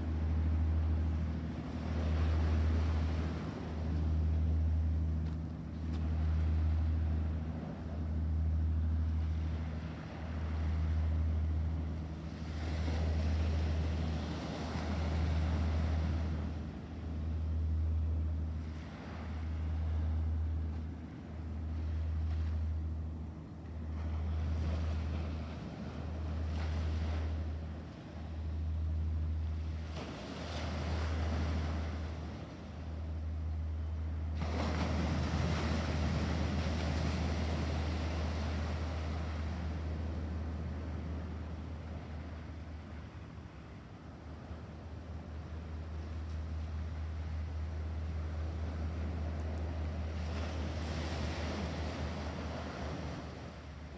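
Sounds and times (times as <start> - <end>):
low pulsing hum: 0.0 - 53.9
ocean surf on rocks: 0.0 - 53.9.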